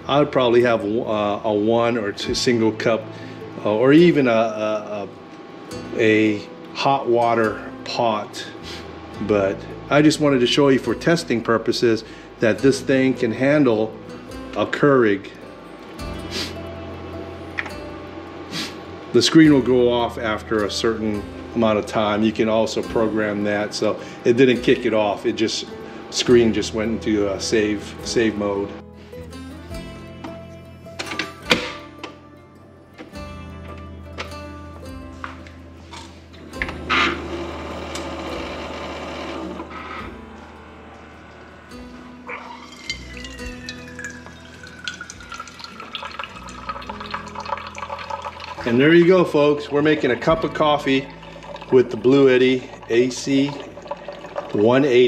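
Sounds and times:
background music: 0.0s - 55.0s
short hiss: 16.2s - 16.6s, 18.5s - 18.8s
coffee maker brewing: 19.0s - 28.7s, 36.4s - 55.0s
coffee streaming into tumbler: 42.3s - 55.0s.

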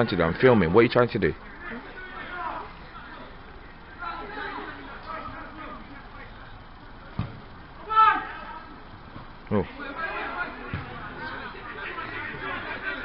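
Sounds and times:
murmuring voices: 0.0s - 13.0s
loud short shout: 7.8s - 8.6s.

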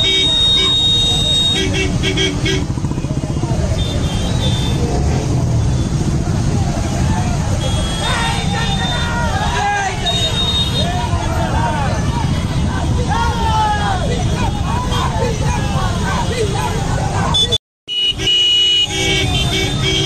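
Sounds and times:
motorcycle engines running: 0.0s - 17.6s, 18.2s - 20.0s
crowd shouting: 5.9s - 17.6s.

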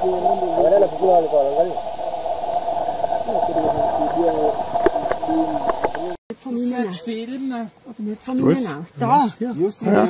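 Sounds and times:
steady hum: 0.0s - 6.2s
thin radio-like sound: 0.0s - 6.2s.

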